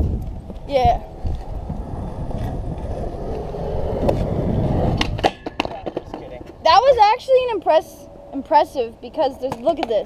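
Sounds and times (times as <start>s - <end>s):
skateboard wheels rolling on concrete: 0.0s - 10.0s
skateboard clacking on ground: 0.2s - 6.8s, 9.1s - 10.0s.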